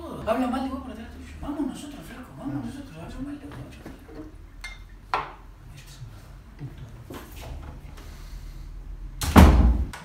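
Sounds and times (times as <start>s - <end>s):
wooden door pulled shut: 9.2s - 10.0s.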